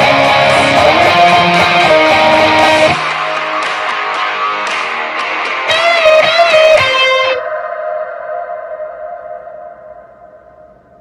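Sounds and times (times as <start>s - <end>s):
electric guitar note ringing: 0.0s - 11.0s.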